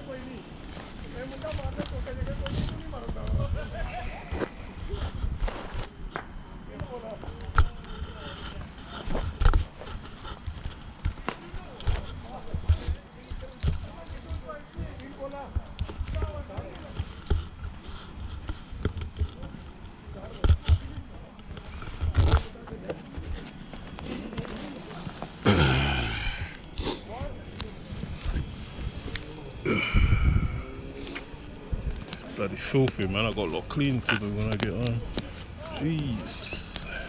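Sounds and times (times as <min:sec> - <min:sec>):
faint voices: 0:00.0 - 0:37.0.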